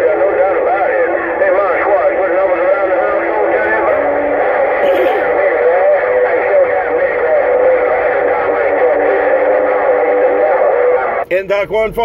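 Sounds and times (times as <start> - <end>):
wavering radio whistles: 0.0 - 11.3
garbled radio voices: 0.0 - 12.0.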